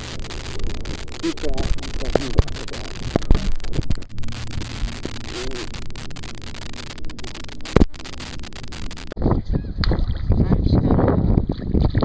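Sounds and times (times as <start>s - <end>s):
wind rumble on microphone: 8.8s - 12.0s.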